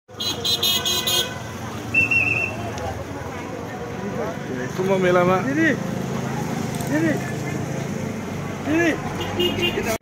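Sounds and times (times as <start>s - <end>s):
vehicle horn beeping rapidly: 0.1s - 2.6s, 9.2s - 10.0s.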